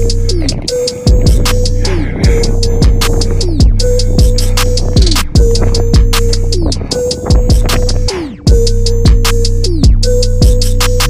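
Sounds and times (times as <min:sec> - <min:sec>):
deep kick drums: 0:00.0 - 0:11.0
ticking hi-hats: 0:00.0 - 0:11.0.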